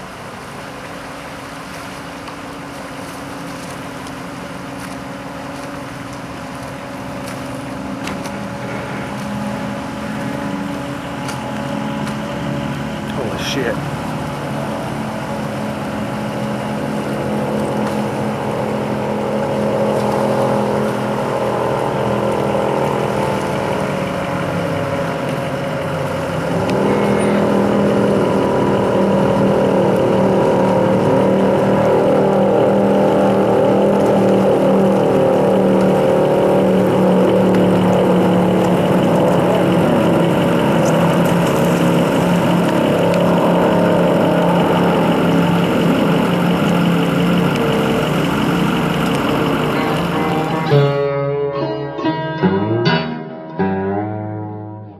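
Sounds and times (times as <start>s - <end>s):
powerboat engine running: 0.0s - 51.1s.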